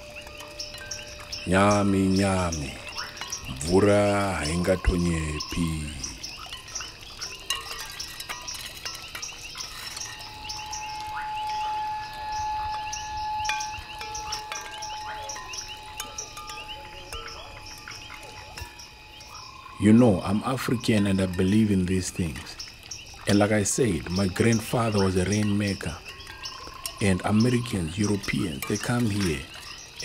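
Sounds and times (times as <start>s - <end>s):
clear sustained tone: 0.0s - 30.0s
faint steady high tones: 0.0s - 30.0s.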